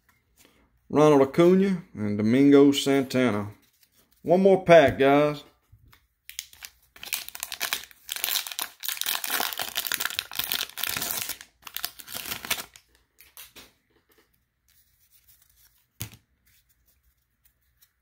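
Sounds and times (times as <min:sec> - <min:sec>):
faint card handling sounds: 0:03.2 - 0:06.9, 0:12.3 - 0:18.0
plastic wrapper tearing and crinkling: 0:06.3 - 0:13.6.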